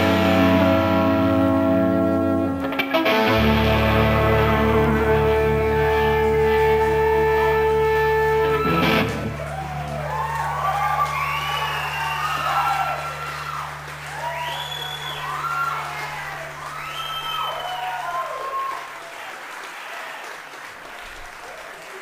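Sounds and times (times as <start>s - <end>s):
audience applauding: 2.9s - 22.0s
low steady hum: 3.5s - 18.3s
audience cheering and shouting: 6.2s - 20.3s.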